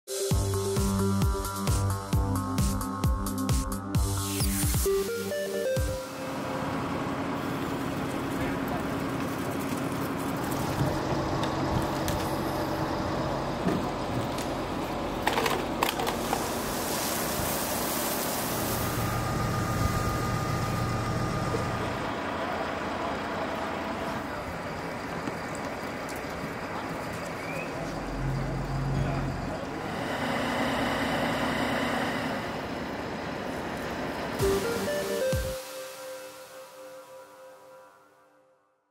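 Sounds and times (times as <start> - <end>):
fire engine motor running: 4.9 - 35.6
people talking: 8.0 - 9.8, 21.1 - 30.0.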